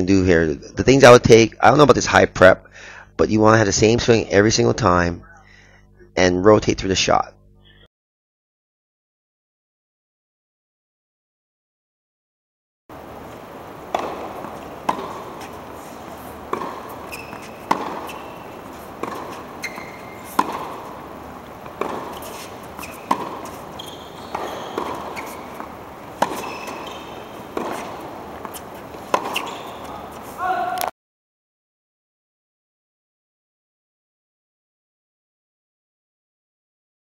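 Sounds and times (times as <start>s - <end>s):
tennis balls struck by rackets: 12.9s - 30.8s
shoe squeaks: 14.0s - 30.7s.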